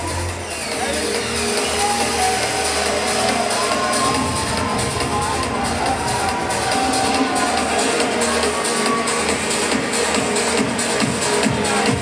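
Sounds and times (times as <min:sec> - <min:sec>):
loud trance music: 0:00.0 - 0:12.0.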